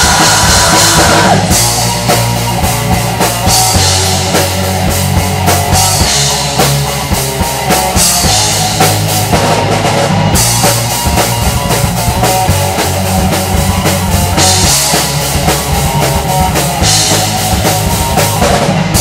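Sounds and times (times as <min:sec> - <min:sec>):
bass drum and snare beat: 0:00.0 - 0:19.0
rock band playing: 0:00.0 - 0:19.0.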